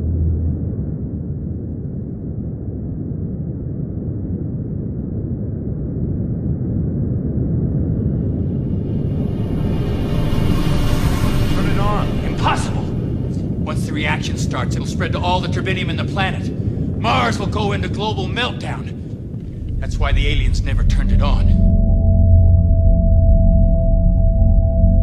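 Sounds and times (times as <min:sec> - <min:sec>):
deep rumbling sound design: 0:00.0 - 0:25.0.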